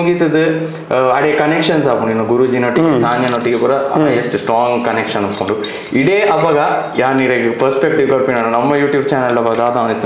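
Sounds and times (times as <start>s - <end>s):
man talking: 0.0s - 10.0s
metal water bottle clinking: 5.2s - 7.4s.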